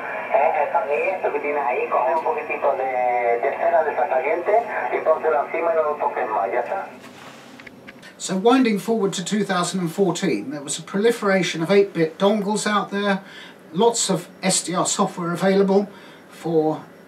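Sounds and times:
person talking over radio: 0.0s - 7.0s
radio band hiss: 0.0s - 17.0s.

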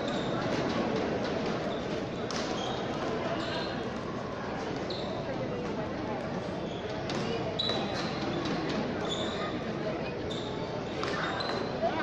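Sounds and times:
shoe squeaks on court floor: 0.0s - 0.6s, 1.6s - 3.9s, 4.8s - 5.3s, 6.6s - 9.6s, 10.2s - 11.8s
murmur of crowd chatter: 0.0s - 12.0s.

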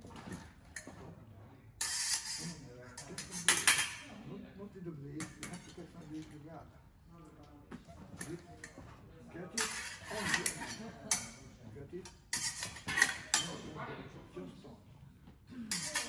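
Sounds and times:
steel blades clinking and scraping: 1.8s - 4.0s, 9.6s - 11.4s, 12.0s - 13.6s, 15.7s - 16.0s.

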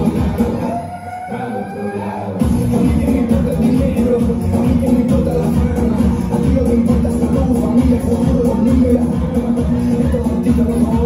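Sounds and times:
dance music: 0.0s - 11.0s.

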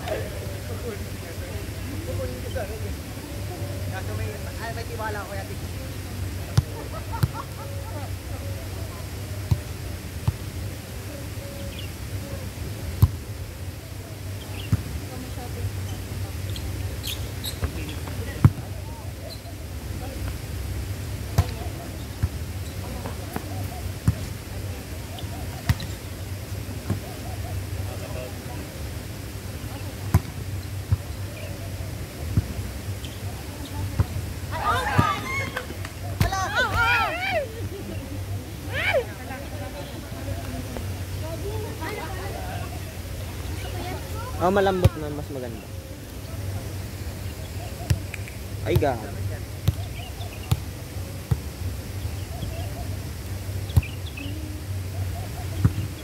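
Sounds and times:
faint voices: 0.0s - 56.0s.

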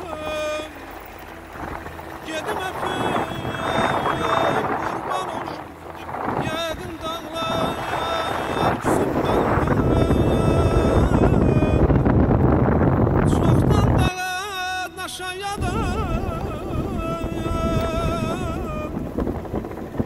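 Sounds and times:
song with ornamented singing voice: 0.0s - 12.3s, 13.1s - 20.0s
wind buffeting microphone: 0.0s - 20.0s.

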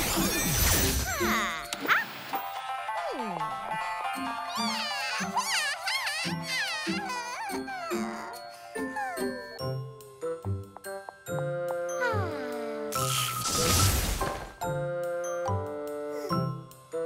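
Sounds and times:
tinkling cartoon music: 0.0s - 13.7s, 14.6s - 17.0s.

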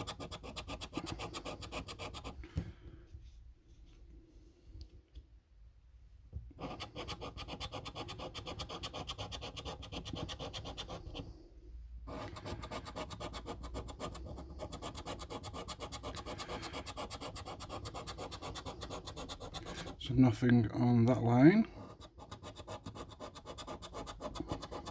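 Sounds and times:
coin scratching a scratchcard: 0.0s - 2.4s, 6.6s - 11.2s, 12.1s - 20.0s, 21.8s - 24.9s.

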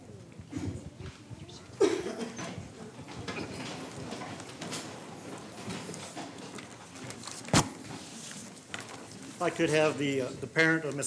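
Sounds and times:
chairs knocking and scraping: 1.8s - 9.6s.

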